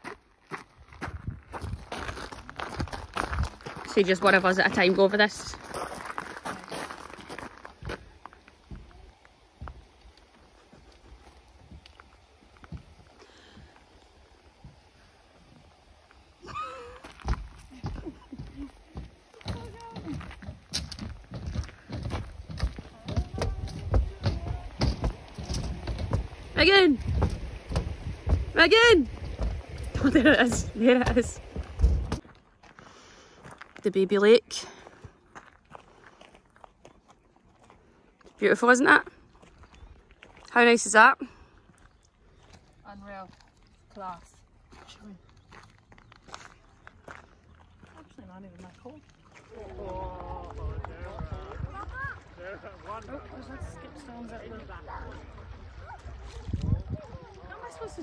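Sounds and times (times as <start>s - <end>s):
footsteps on a footbridge: 0.0s - 15.7s, 16.5s - 33.9s, 34.5s - 40.6s, 44.7s - 51.4s.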